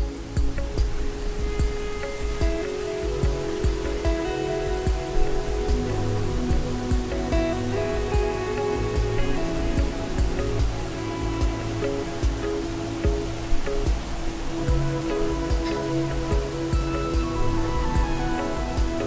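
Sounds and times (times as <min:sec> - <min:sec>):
gentle low beat: 0:00.0 - 0:19.0
soft calm background music: 0:00.0 - 0:19.0.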